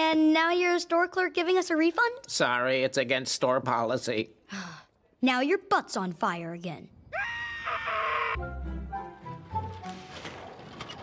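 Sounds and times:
cartoon character screaming: 0:07.1 - 0:08.4.

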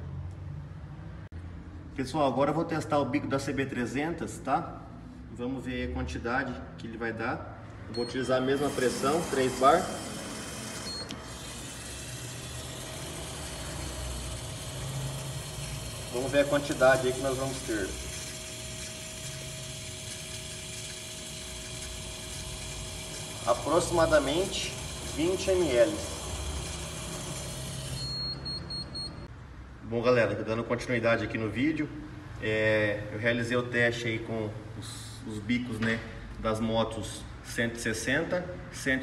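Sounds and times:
short high-pitched electronic beeps: 0:07.9 - 0:08.7, 0:28.0 - 0:29.3
pump humming with hiss: 0:08.5 - 0:28.2.

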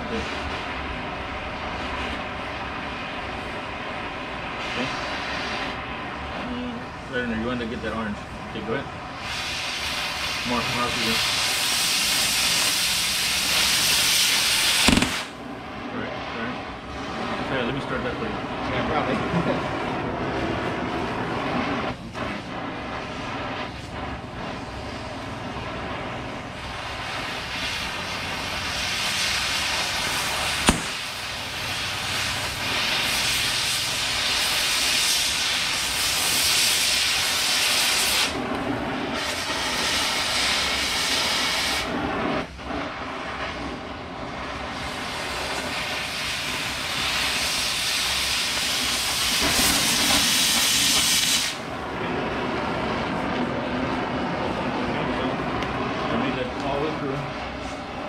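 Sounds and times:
cutting torch hissing: 0:00.0 - 0:58.0.

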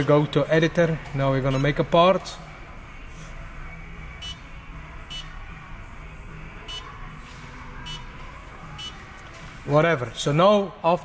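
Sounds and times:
short high beeps: 0:04.2 - 0:04.4.

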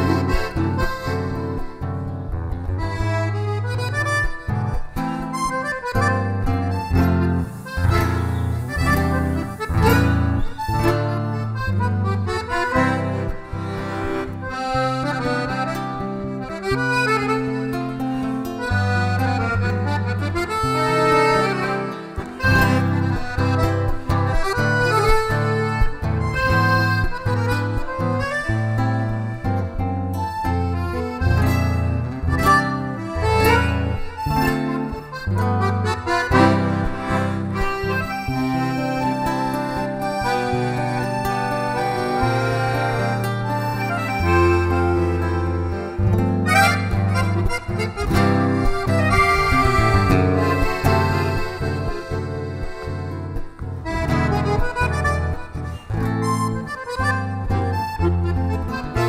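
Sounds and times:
acoustic guitar: 0:00.0 - 0:59.0
button accordion playing tune: 0:00.0 - 0:59.0.

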